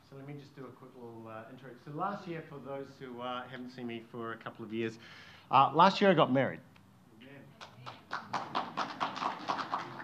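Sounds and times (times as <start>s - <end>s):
audience applauding: 7.6s - 10.0s.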